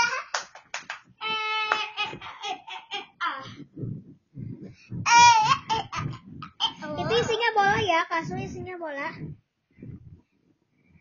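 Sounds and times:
soft low thumps: 1.1 - 11.0
child laughing: 1.2 - 3.5.

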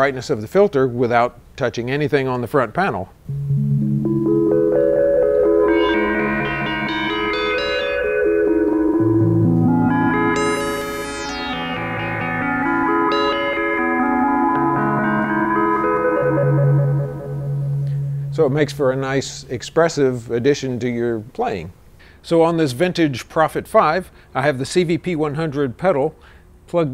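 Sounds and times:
synthesizer playing held chords: 3.3 - 19.5.

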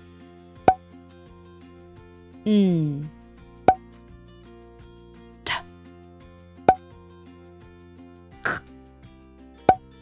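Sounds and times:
soft background music: 0.0 - 10.0
woman making breathy t sound: 8.4 - 8.6.

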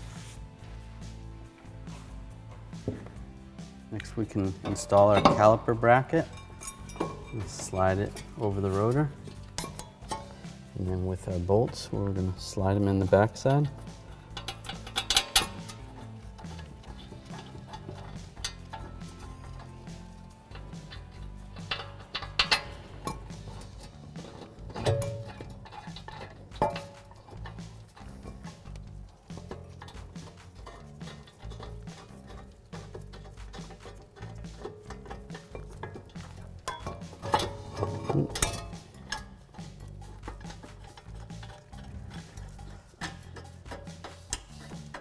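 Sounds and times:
background music: 0.0 - 45.0
metallic clinks and knocks: 3.9 - 45.0.

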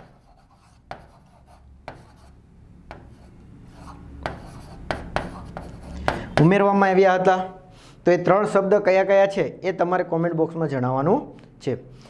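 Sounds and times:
pen scratching on glass: 0.0 - 2.3, 2.9 - 6.1.

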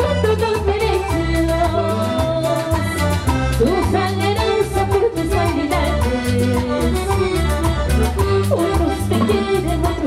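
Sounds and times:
woman singing: 0.0 - 7.5, 8.4 - 10.0
latin dance band playing: 0.0 - 10.0.

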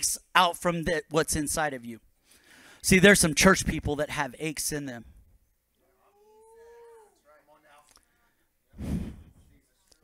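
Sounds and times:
breathy puff on microphone: 8.8 - 9.4.

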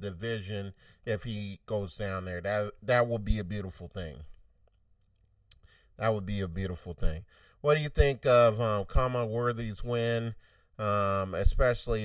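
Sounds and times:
man's voice: 0.0 - 4.3, 6.0 - 12.0.

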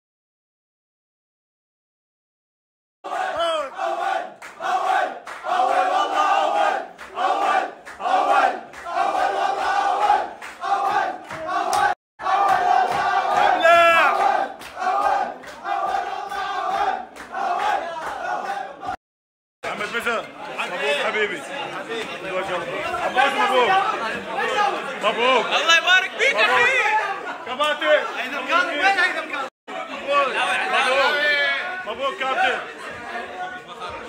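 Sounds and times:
group chanting and shouting: 3.0 - 19.0.

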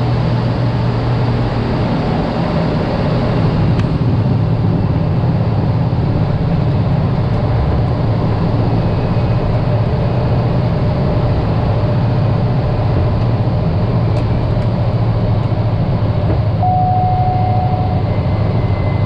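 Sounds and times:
turboprop engine and propeller: 0.0 - 19.0
short steady tone: 16.6 - 19.0.

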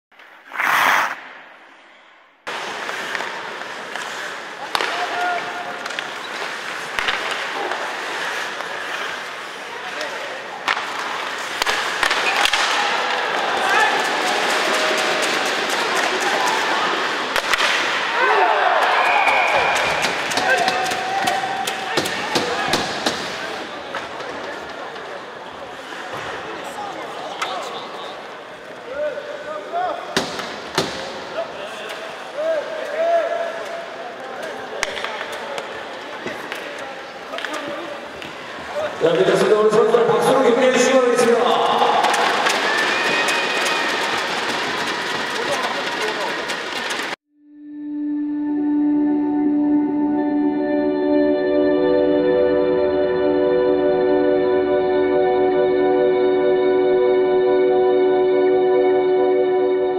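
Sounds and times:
rink and crowd din: 0.1 - 47.2
skates scraping on ice: 0.2 - 1.6, 2.5 - 18.0, 41.4 - 47.2
sticks and puck clacking: 2.5 - 18.3, 19.5 - 26.4, 30.1 - 38.9, 41.2 - 47.2.

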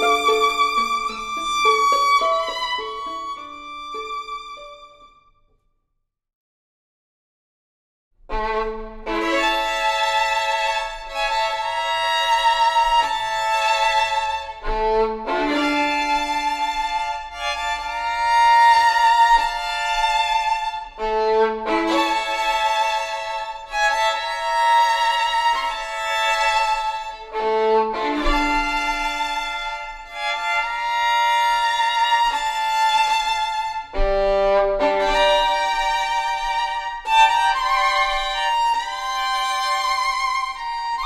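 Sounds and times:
two violins playing a folk tune: 0.0 - 5.1, 8.3 - 41.0.

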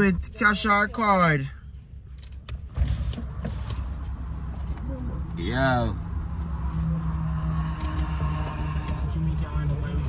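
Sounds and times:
car engine and cabin drone: 0.0 - 10.0.

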